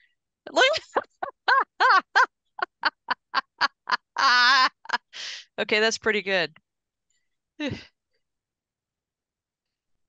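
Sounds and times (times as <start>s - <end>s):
woman laughing hard: 0.5s - 5.4s.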